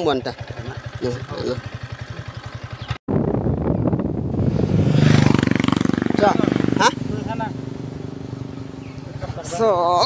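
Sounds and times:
motorcycle engine idling: 0.0s - 4.4s, 5.1s - 10.0s
motorcycle engine running on the move: 0.0s - 10.0s.

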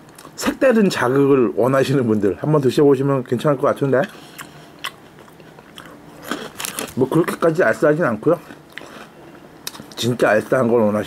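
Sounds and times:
crunchy snack being chewed: 4.3s - 7.4s, 8.3s - 10.0s.

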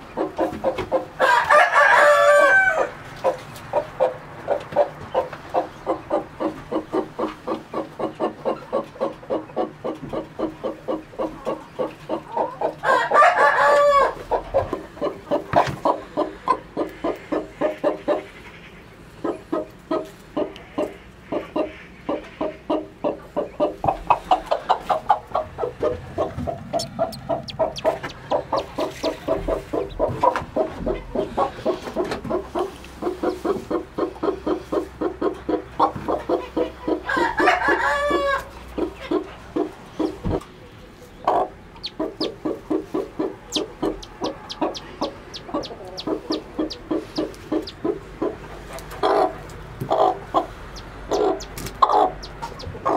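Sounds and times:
hen clucking: 0.0s - 52.9s.

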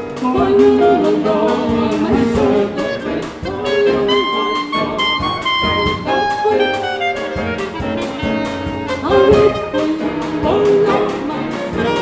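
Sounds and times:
orchestra and jazz band: 0.0s - 12.0s.

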